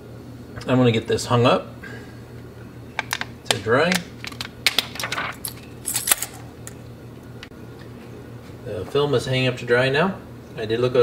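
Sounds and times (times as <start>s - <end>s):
steady low hum: 0.0s - 11.0s
plastic clicks and rattles: 3.0s - 3.3s.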